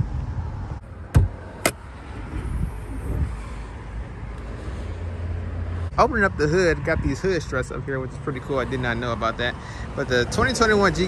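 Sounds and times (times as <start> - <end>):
hood latch clicks: 1.1 - 1.8.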